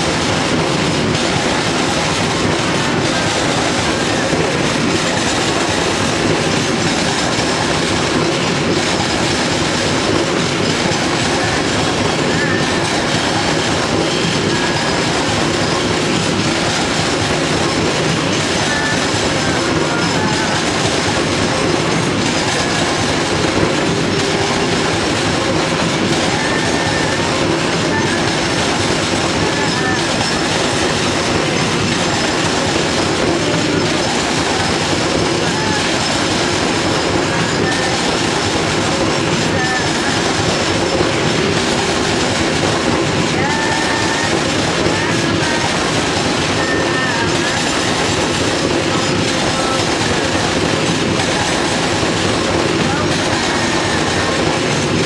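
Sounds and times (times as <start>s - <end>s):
freight train passing: 0.0s - 55.0s.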